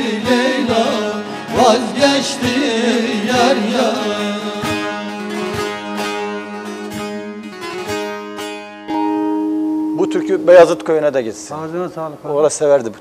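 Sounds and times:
plucked long-necked lutes: 4.6s - 12.0s.

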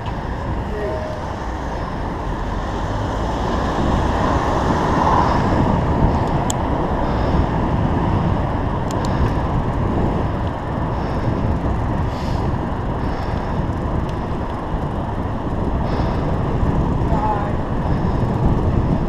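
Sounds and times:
motor traffic passing: 0.0s - 19.0s
road noise: 0.0s - 19.0s
wind rush: 0.0s - 19.0s.

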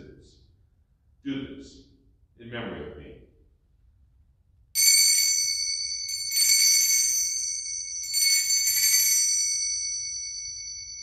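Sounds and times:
altar bells jangling: 4.8s - 11.0s.

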